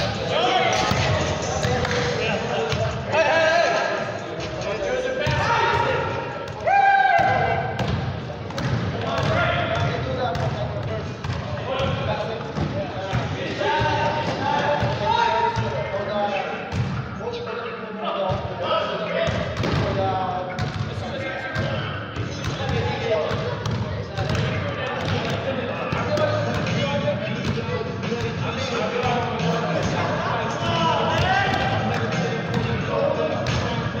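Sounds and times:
basketballs bouncing on gym floor: 5.2s - 15.0s, 19.3s - 20.9s, 21.5s - 26.8s, 30.6s - 32.8s.

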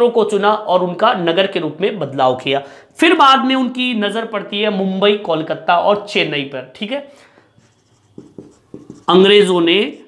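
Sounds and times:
marker pen on a whiteboard: 4.6s - 10.0s.

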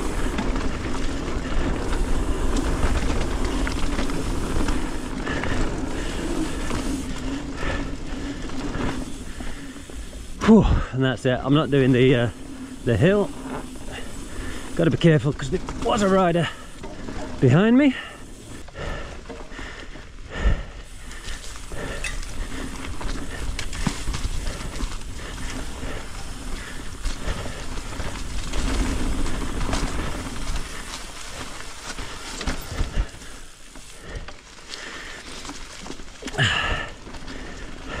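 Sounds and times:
bike tyres rumbling on dirt: 0.0s - 38.0s.

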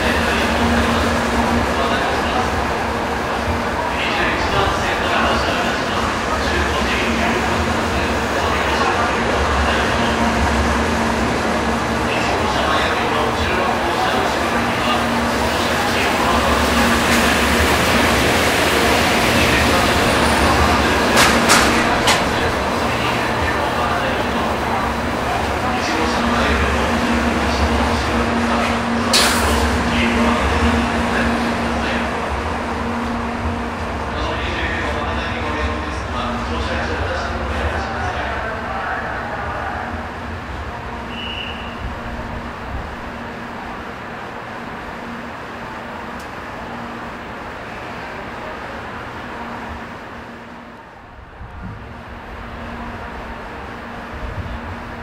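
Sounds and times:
train wheels rumbling: 0.0s - 55.0s.

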